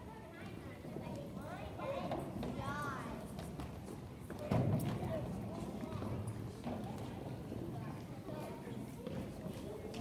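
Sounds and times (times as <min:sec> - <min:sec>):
children's feet on wooden stage: 0:00.3 - 0:10.0.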